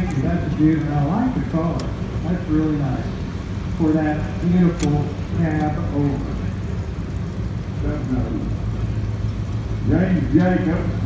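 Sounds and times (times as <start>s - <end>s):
truck engine rumbling by: 0.0s - 11.0s.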